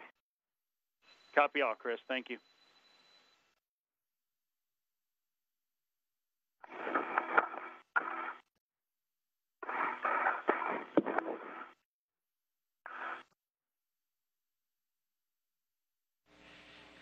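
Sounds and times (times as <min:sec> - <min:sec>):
static radio transmission bursts: 0:06.6 - 0:08.5, 0:09.6 - 0:11.8, 0:12.9 - 0:13.3.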